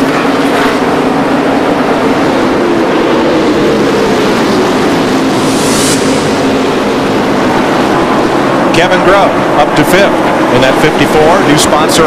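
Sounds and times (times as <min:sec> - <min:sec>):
rush of higher noise: 0:00.0 - 0:11.5
race car engines roaring: 0:00.0 - 0:12.0.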